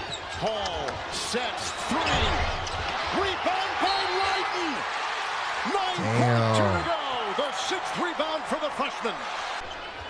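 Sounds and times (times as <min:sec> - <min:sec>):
arena crowd noise: 0:00.0 - 0:10.0
commentator talking: 0:05.9 - 0:06.9.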